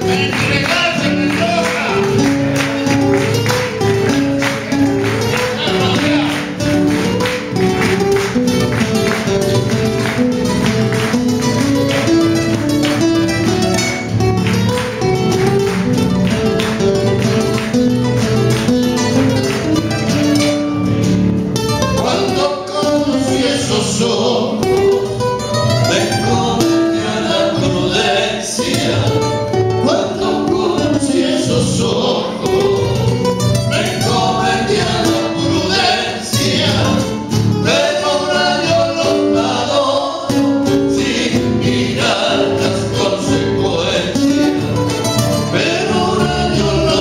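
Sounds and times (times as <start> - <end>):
acoustic guitars playing: 0.0 - 47.0
male voices singing in harmony: 4.4 - 6.6, 22.0 - 25.0, 25.8 - 44.7, 45.4 - 47.0.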